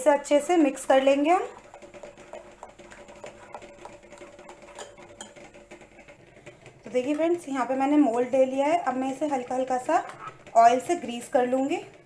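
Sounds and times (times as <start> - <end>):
spoon stirring batter: 0.0 - 12.0.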